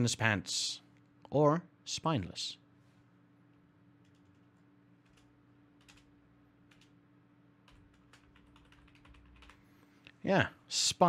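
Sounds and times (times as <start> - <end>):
low steady hum: 0.0 - 11.0
typing on computer keyboard: 4.0 - 6.1, 6.7 - 6.9, 7.6 - 9.6.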